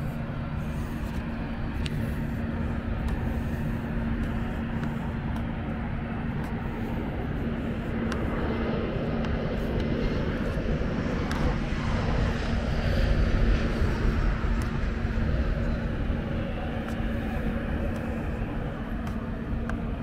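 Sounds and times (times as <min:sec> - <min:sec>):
jet airliner engine: 0:00.0 - 0:20.0
outdoor traffic rumble: 0:00.0 - 0:20.0
steady low hum: 0:00.0 - 0:20.0.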